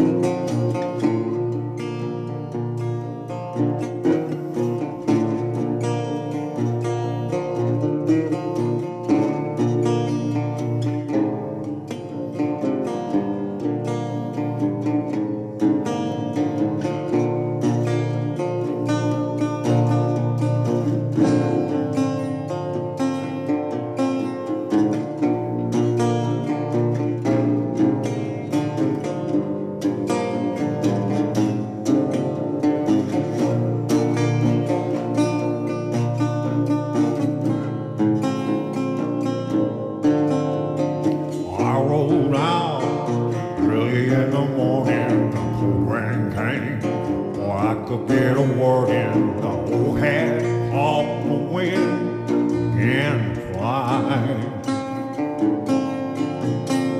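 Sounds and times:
resonator guitar blues: 0.0 - 56.9.

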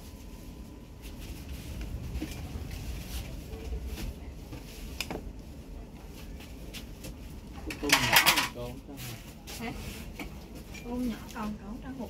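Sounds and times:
low rumble: 0.0 - 7.8.

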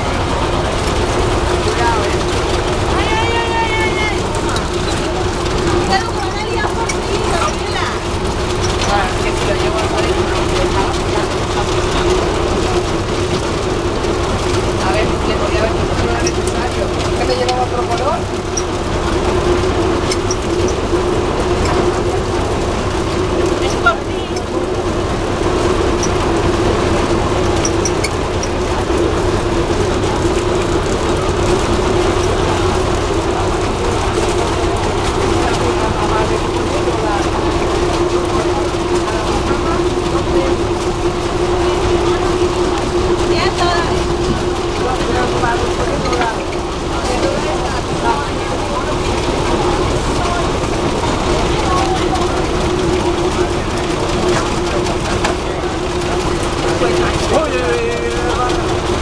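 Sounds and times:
boat engine droning: 0.0 - 59.0
people talking: 0.0 - 59.0.

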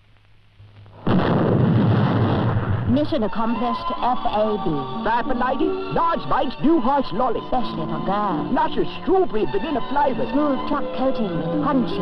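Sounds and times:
loud explosion: 0.9 - 3.3.

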